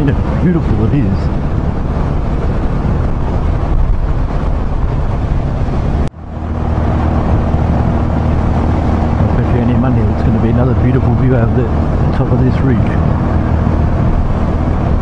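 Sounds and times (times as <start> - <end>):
motorcycle engine drone: 0.0 - 15.0
wind and road noise: 0.0 - 15.0.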